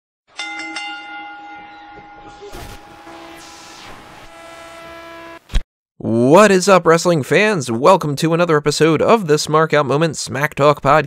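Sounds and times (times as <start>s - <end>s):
bell-like chime ringing: 0.3s - 3.8s.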